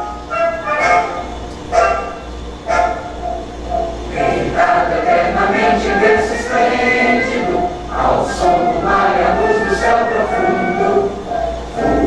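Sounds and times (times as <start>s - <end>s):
crowd singing along: 3.8s - 12.0s
orchestral anthem recording: 3.8s - 12.0s.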